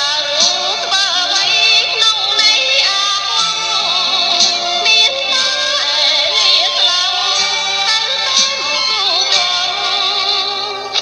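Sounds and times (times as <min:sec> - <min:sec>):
instrumental accompaniment with beat: 0:00.0 - 0:11.0
person singing ornamented melody: 0:00.0 - 0:11.0.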